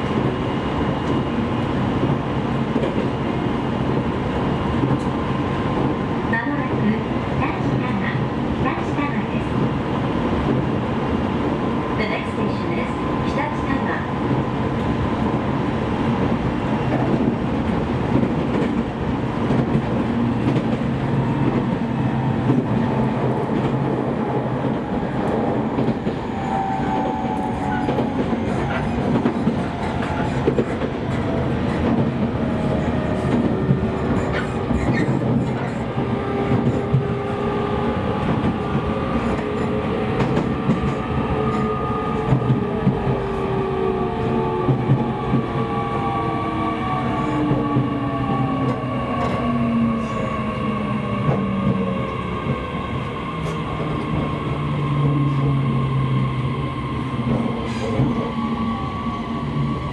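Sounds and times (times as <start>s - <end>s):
train wheels on rails: 0.0s - 59.9s
rail joint clicks: 4.8s - 5.2s, 16.2s - 37.4s, 38.2s - 46.2s, 46.8s - 52.6s, 57.2s - 58.7s.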